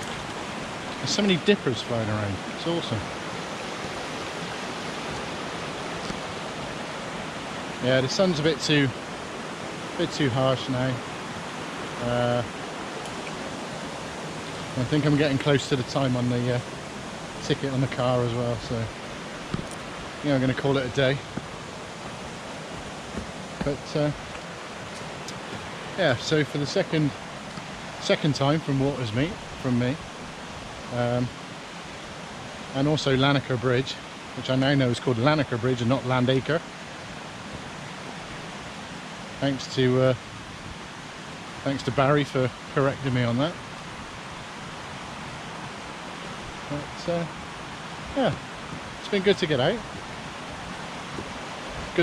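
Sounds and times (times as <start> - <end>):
rushing river water: 0.0 - 52.0.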